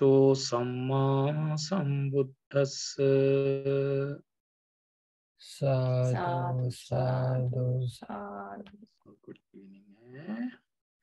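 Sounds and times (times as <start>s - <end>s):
man chanting: 0.0s - 4.2s, 5.5s - 8.0s.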